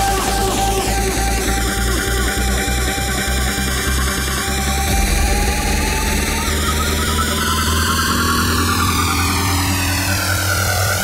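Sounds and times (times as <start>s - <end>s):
deep bass: 0.0s - 11.0s
distorted synth drone: 0.0s - 11.0s
falling sweep effect: 4.8s - 11.0s.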